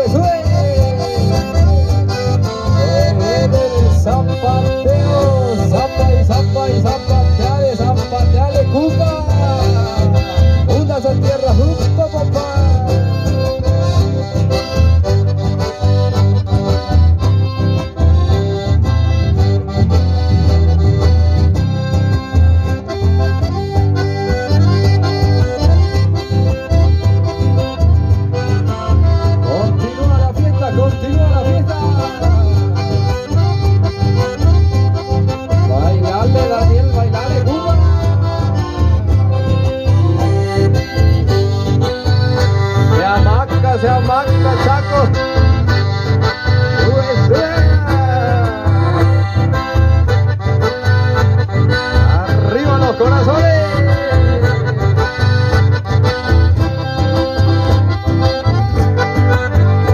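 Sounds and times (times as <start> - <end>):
bass: 0.0 - 59.9
button accordion: 0.0 - 59.9
strummed acoustic guitar: 0.0 - 59.9.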